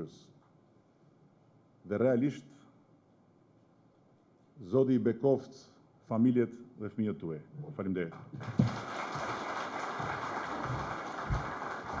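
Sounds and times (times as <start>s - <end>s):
audience applauding: 8.3s - 12.0s.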